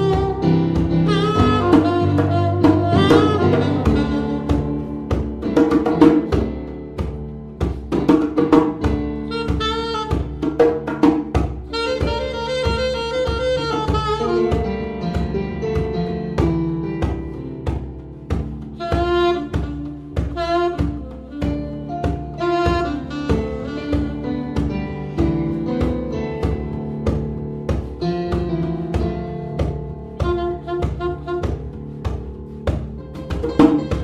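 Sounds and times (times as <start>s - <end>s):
saxophone melody: 0.0s - 7.9s, 8.7s - 34.0s
hand percussion: 0.0s - 34.0s.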